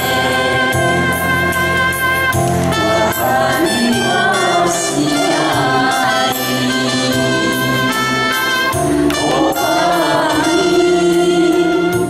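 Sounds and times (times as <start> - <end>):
group singing into microphones: 0.0 - 12.0
instrumental accompaniment: 0.0 - 12.0.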